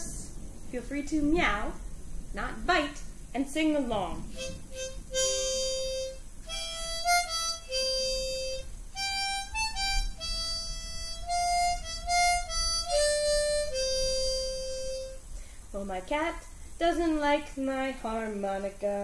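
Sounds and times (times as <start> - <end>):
harmonica melody: 4.3 - 15.2.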